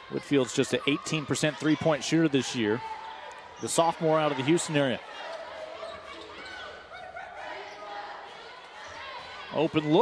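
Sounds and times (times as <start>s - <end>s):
faint voices echoing: 0.0s - 10.0s.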